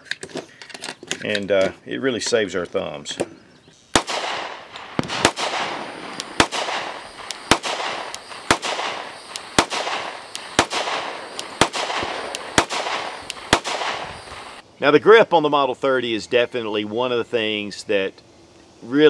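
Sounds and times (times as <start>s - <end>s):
pistol shots echoing: 3.9s - 14.6s.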